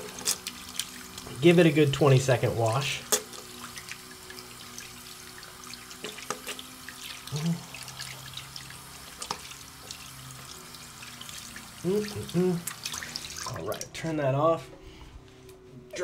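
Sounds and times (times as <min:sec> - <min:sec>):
soapy hands rubbing: 0:00.0 - 0:13.8
faucet running: 0:00.0 - 0:14.0
low steady hum: 0:00.0 - 0:16.0
small water splashes: 0:03.1 - 0:14.0.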